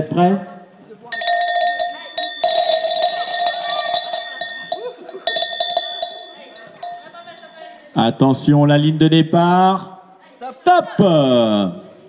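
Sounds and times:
hand bell ringing: 1.1s - 8.0s
metallic rattle: 1.1s - 8.0s.

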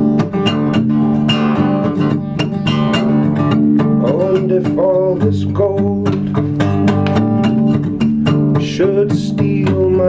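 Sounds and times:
acoustic guitar strumming: 0.0s - 10.0s.

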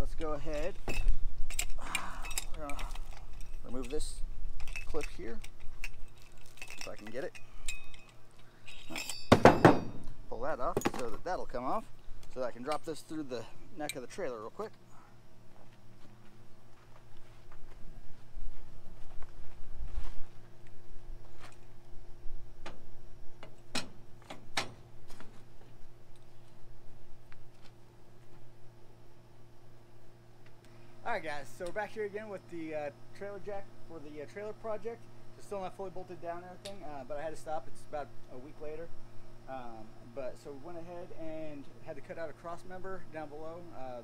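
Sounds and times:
light metallic clicks and clinks: 0.2s - 10.1s.

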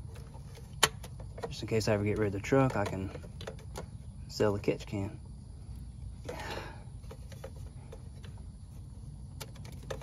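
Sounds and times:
steady low hum: 0.0s - 10.0s
plastic parts clicking: 0.1s - 4.0s, 9.3s - 10.0s.

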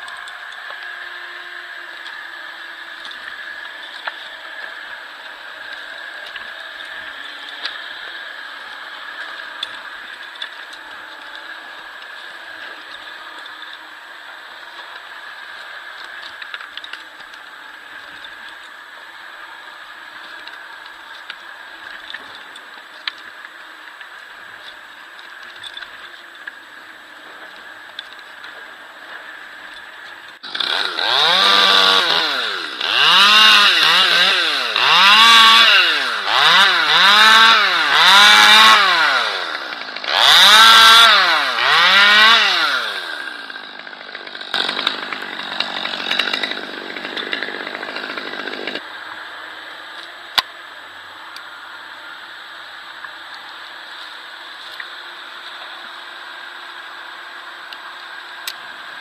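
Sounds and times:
chainsaw revving: 0.0s - 26.5s, 29.1s - 48.9s
quiet steady drone: 0.0s - 30.5s.

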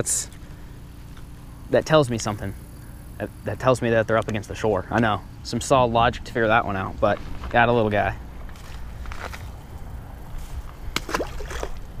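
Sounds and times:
fish splashing into water: 10.9s - 12.0s.

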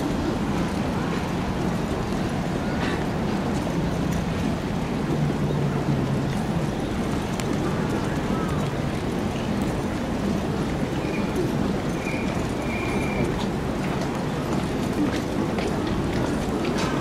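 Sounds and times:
murmur of large crowd: 0.0s - 17.0s.

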